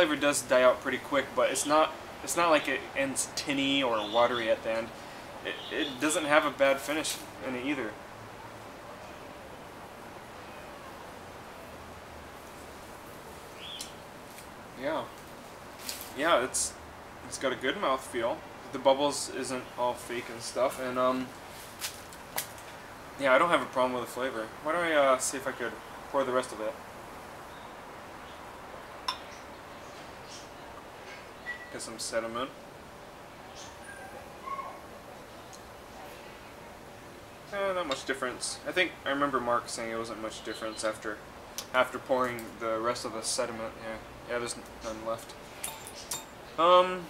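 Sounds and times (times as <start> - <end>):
faint outdoor background noise: 0.0 - 47.0
steady low hiss: 0.0 - 47.0
glass bottle clinking glass: 29.1 - 29.4, 45.6 - 46.4.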